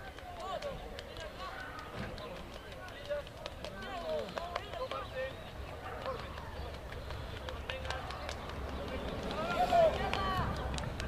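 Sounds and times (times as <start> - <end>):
players shouting: 8.9 - 10.5.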